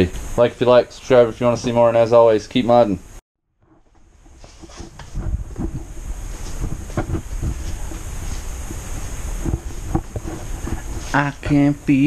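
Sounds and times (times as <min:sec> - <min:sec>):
knocks and bumps: 0:03.6 - 0:11.2
rumbling on camera microphone: 0:03.6 - 0:11.5.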